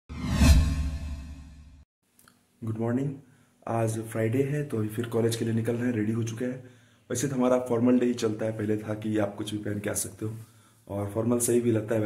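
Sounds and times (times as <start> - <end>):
whoosh: 0.1 - 1.8.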